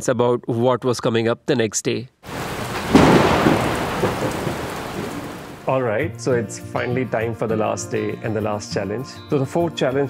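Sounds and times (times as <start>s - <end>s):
rain hissing: 2.2s - 5.7s
thunder rumbling: 2.3s - 5.7s.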